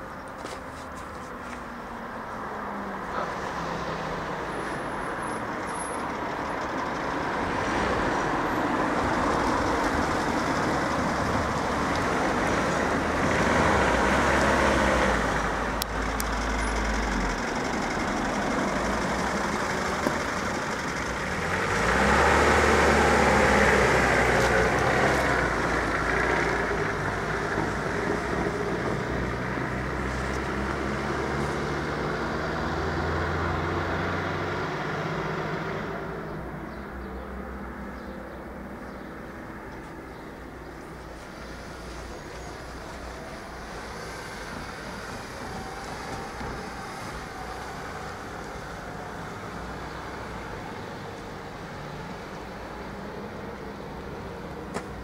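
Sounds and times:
car and truck engines: 0.0 - 55.0.

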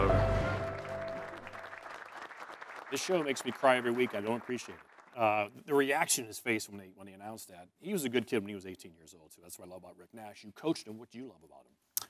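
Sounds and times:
background music: 0.0 - 1.7
crowd clapping: 0.0 - 5.4.

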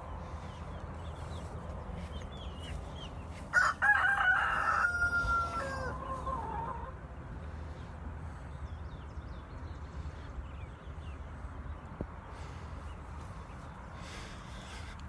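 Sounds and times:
rooster crowing: 3.5 - 7.0.

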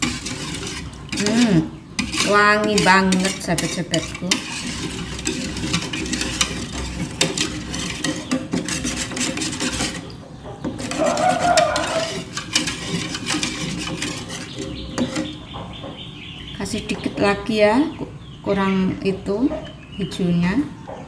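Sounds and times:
wire whisk scraping metal pot: 0.0 - 15.5.

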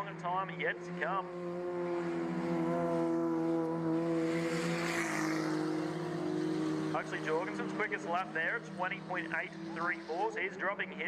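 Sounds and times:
race car engines at high revs: 0.0 - 11.0
car passing with tyre noise: 0.7 - 11.0.

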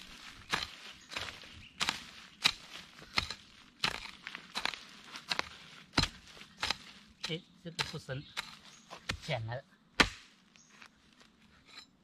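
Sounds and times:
axe chopping into ground: 0.5 - 9.4, 10.0 - 10.3.

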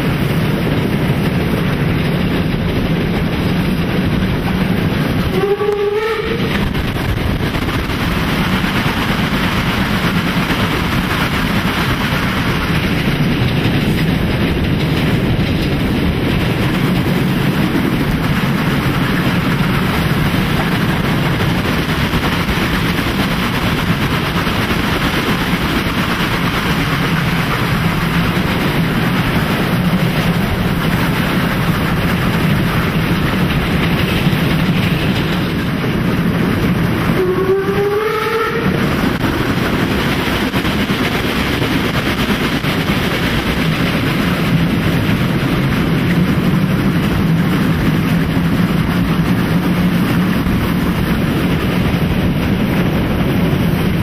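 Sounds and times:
steam locomotive working hard: 0.0 - 54.0
train whistle blast: 5.3 - 6.6, 37.2 - 38.8.

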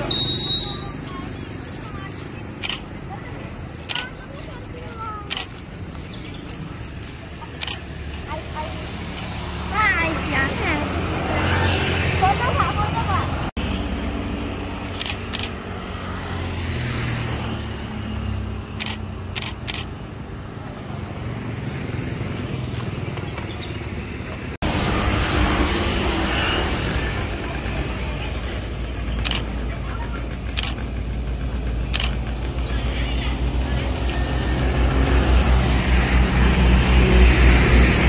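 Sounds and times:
people's voices: 0.0 - 13.5, 26.6 - 36.2
motorcycles passing: 0.0 - 38.0
passing vehicle engines: 0.0 - 38.0.

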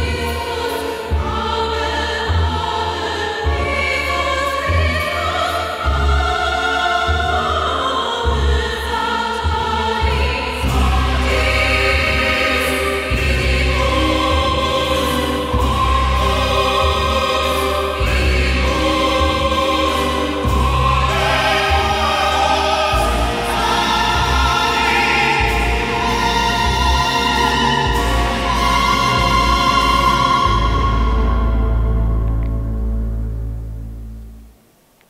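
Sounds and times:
choir holding long notes: 0.0 - 33.8
deep bass notes: 9.4 - 34.6.

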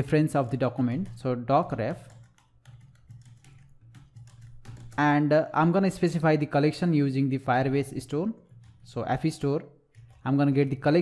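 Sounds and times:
typing on computer keyboard: 0.4 - 5.2, 7.9 - 11.0.

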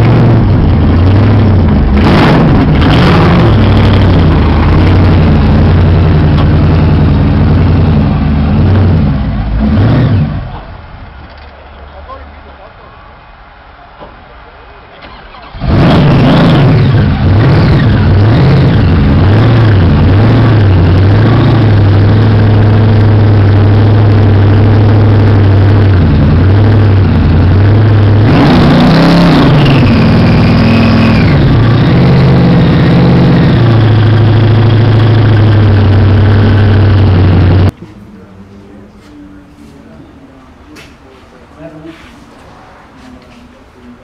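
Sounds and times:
car engine starting and revving: 0.0 - 10.8, 15.0 - 37.8.

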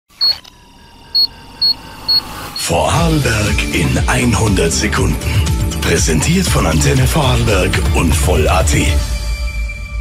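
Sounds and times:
short high electronic beeps: 0.1 - 2.7.

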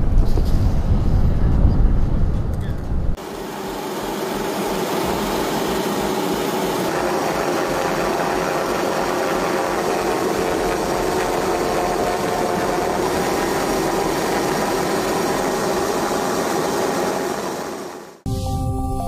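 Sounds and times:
aircraft engine drone: 3.2 - 18.5.

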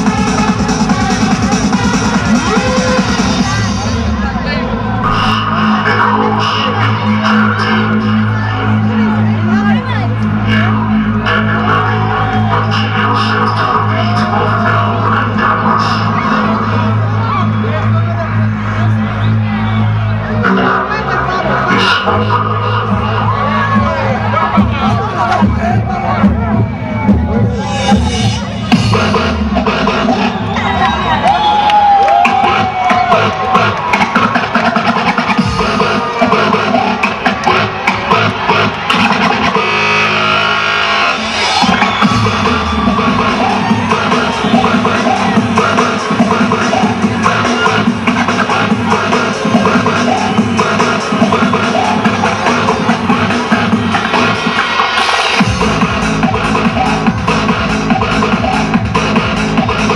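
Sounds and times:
crowd noise: 0.0 - 59.9
electronic dance music: 0.0 - 59.9.

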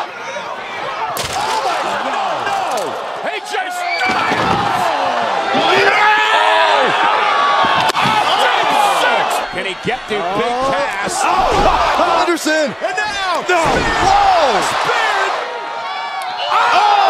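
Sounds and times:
excited shouting voices: 0.0 - 17.0.

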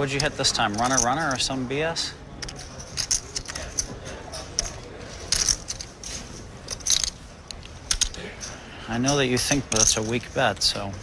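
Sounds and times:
clay poker chips clicking: 0.0 - 1.6, 2.3 - 10.8.

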